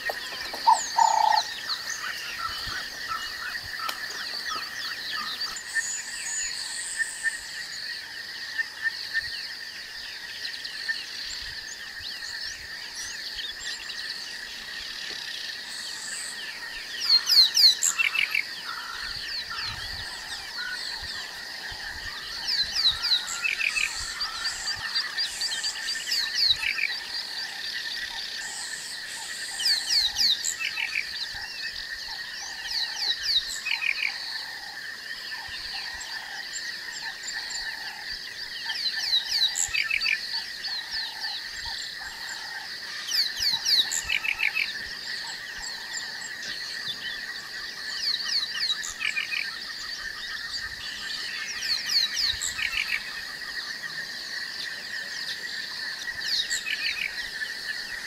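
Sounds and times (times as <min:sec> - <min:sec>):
high insect drone: 0:00.0 - 0:58.0.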